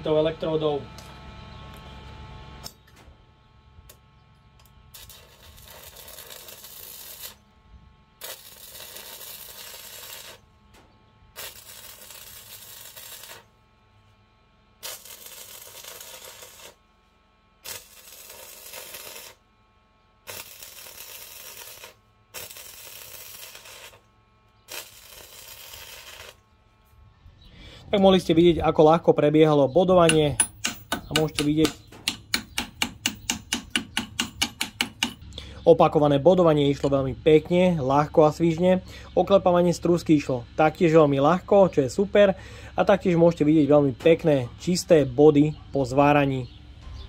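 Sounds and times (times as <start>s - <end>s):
welding arc hissing: 4.6s - 7.4s, 8.2s - 10.5s, 11.3s - 13.6s, 14.8s - 16.8s, 17.6s - 19.5s, 20.2s - 26.4s, 30.0s - 35.2s.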